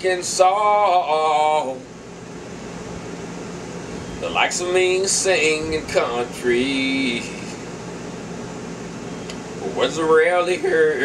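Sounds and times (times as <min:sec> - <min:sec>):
faint low hum: 0:00.0 - 0:11.0
room noise hiss: 0:00.0 - 0:11.0.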